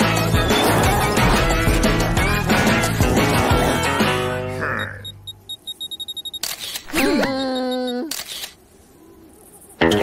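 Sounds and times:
short high beeps: 0:04.8 - 0:08.5
camera shutter clicks: 0:06.4 - 0:07.0, 0:08.0 - 0:08.6.

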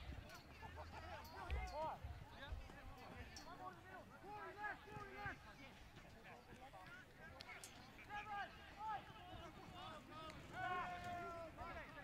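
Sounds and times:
distant shouts and calls: 0:07.5 - 0:12.0.

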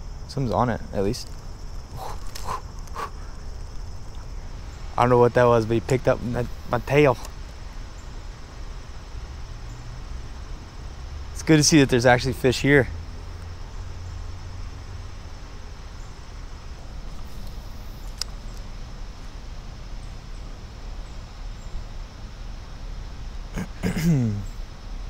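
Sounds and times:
man's wordless voice: 0:05.0 - 0:07.3.

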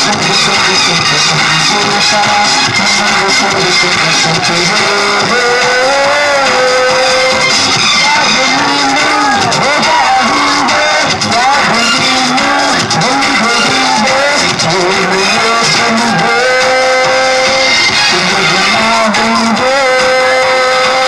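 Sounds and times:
man singing into microphone: 0:00.0 - 0:21.0.

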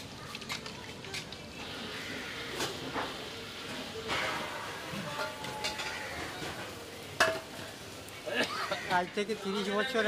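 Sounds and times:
food sizzling in a wok: 0:01.4 - 0:10.0.

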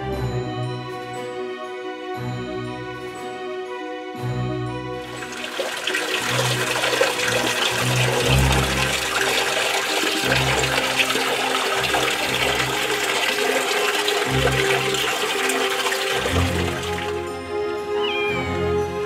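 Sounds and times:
soft background music: 0:00.0 - 0:19.0
water splashing onto stone: 0:05.1 - 0:17.2.

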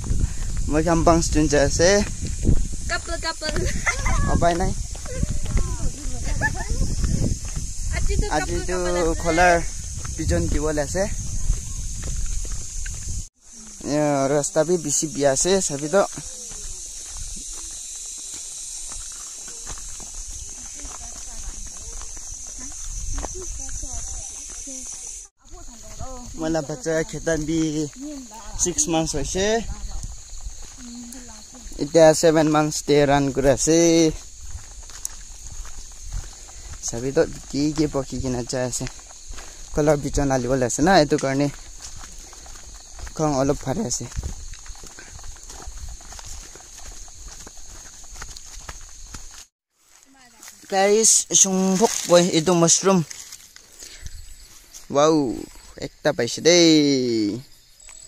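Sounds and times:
footsteps on stony path: 0:00.0 - 0:55.8
insects droning: 0:00.0 - 0:58.0.

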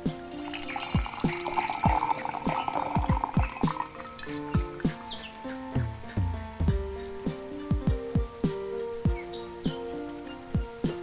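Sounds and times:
background music with drum beats: 0:00.0 - 0:11.0
tea pouring into glass pitcher: 0:00.4 - 0:04.5.

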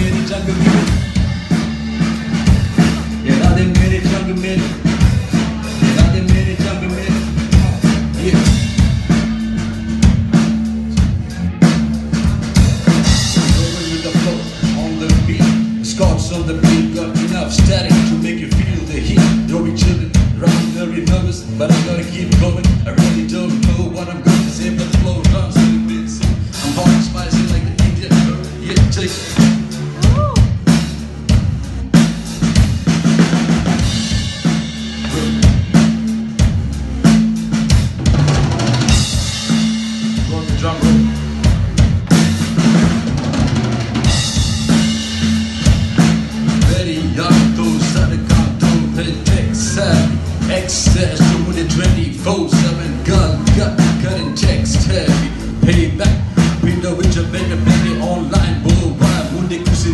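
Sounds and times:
drum kit groove: 0:00.0 - 0:59.9
low bass line: 0:00.0 - 0:59.9.

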